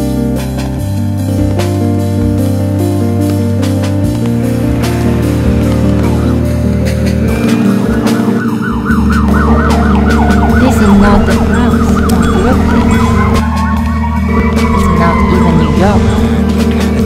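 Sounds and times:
layered music: 0.0s - 17.0s
siren warbling: 4.3s - 17.0s.

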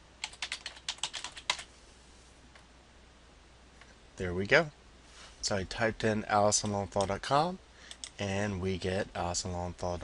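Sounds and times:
typing on computer keyboard: 0.2s - 1.7s.

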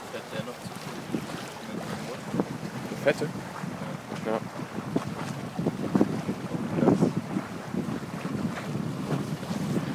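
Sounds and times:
water washing along hull: 0.0s - 9.9s
wind buffeting microphone: 0.1s - 9.9s.

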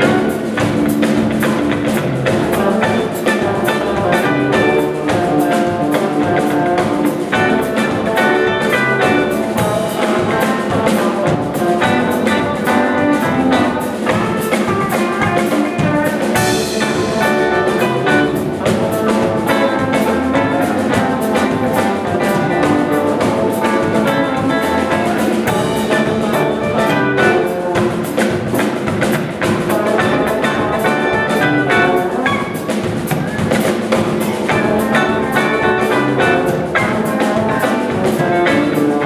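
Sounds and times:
drum kit beat: 0.0s - 39.0s
electric guitars: 0.0s - 39.0s.

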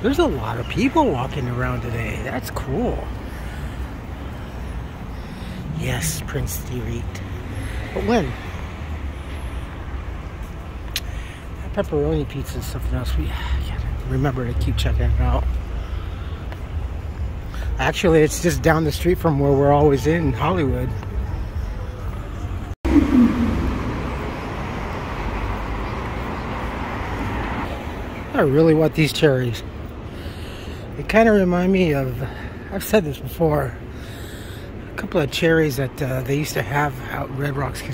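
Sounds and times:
cars passing on street: 0.0s - 37.9s
road traffic rumble: 0.0s - 37.9s
low falling pitch sound: 22.8s - 25.6s.

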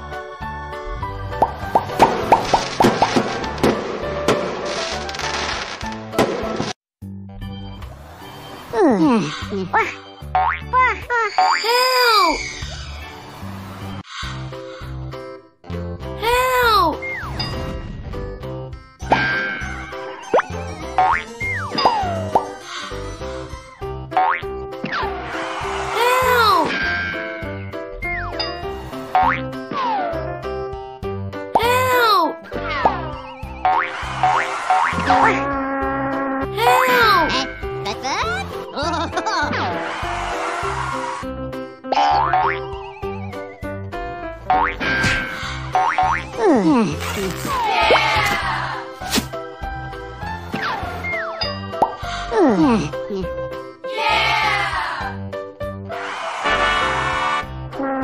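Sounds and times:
bouncy cartoon music: 0.0s - 13.0s, 14.3s - 58.0s
cartoon boing sound effects: 32.6s - 36.4s, 41.9s - 43.2s, 44.5s - 45.0s, 45.8s - 46.4s, 57.8s - 58.0s
springy cartoon boings: 41.9s - 43.7s.

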